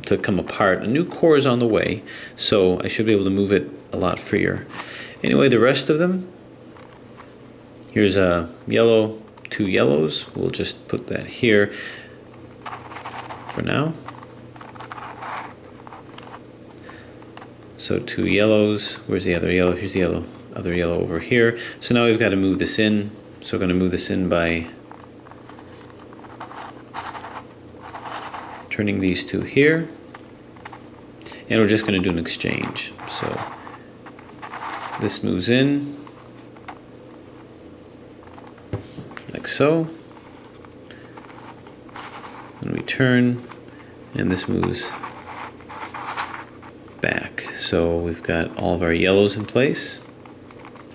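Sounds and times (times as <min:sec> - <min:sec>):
plastic puzzle pieces scraping: 0:12.6 - 0:17.5, 0:24.8 - 0:28.8, 0:30.5 - 0:30.9, 0:31.6 - 0:35.4, 0:40.1 - 0:42.7, 0:43.4 - 0:46.8, 0:49.3 - 0:50.9.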